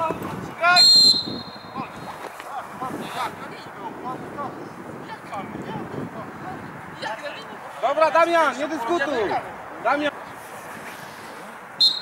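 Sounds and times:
referee's whistle blast: 0.7s - 1.8s, 11.8s - 12.0s.

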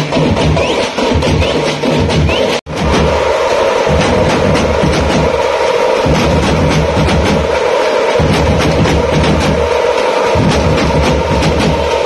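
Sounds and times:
frame drums beaten with sticks: 0.0s - 12.0s.

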